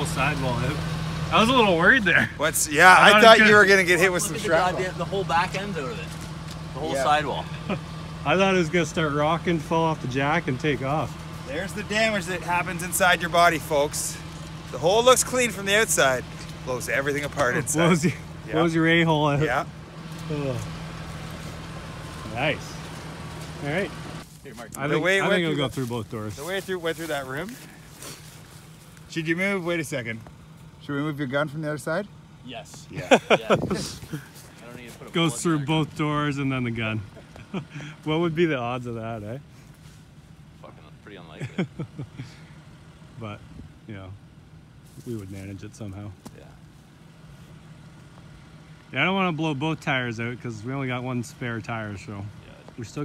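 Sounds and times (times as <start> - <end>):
car engine running: 0.0 - 53.0.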